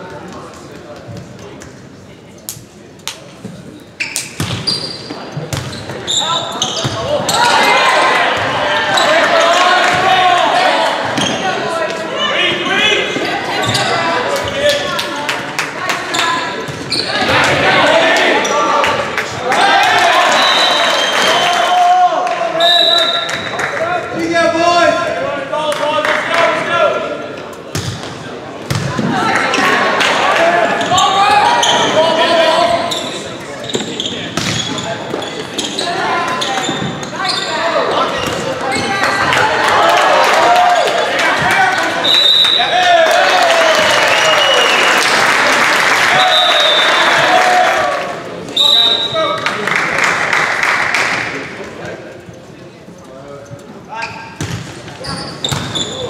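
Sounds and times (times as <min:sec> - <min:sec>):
spectators' voices echoing: 0:00.0 - 0:56.0
people shouting in a gymnasium: 0:06.0 - 0:15.0, 0:15.8 - 0:27.3, 0:28.9 - 0:49.4
referee's whistle blast: 0:20.3 - 0:21.7, 0:22.6 - 0:23.4, 0:46.2 - 0:47.2, 0:48.5 - 0:49.3.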